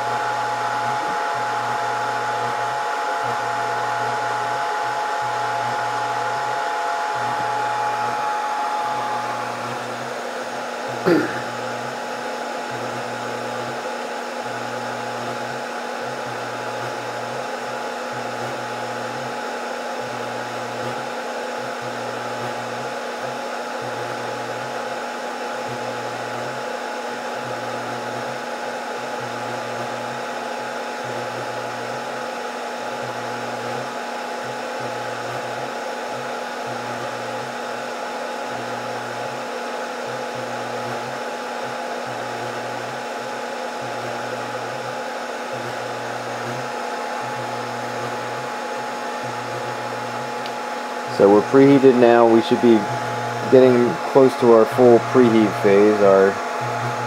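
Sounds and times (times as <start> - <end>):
faint steady whine: 0.0 - 12.0, 43.8 - 57.0
hot-air blowers whooshing: 0.0 - 26.3, 33.3 - 57.0
low hum cutting in and out: 46.4 - 57.0.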